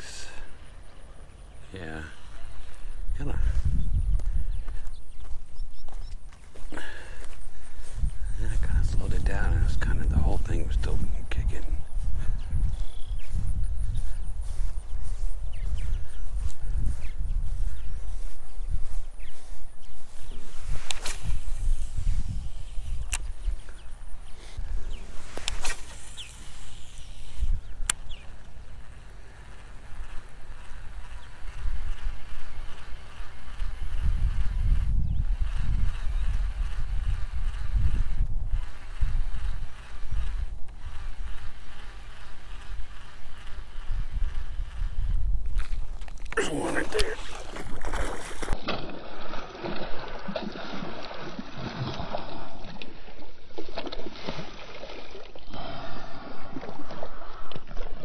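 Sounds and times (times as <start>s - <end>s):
footsteps on grass: 2.3s - 23.4s, 38.6s - 48.6s
fishing rod handling noise: 18.2s - 51.2s
sharp clicks: 25.4s - 33.8s.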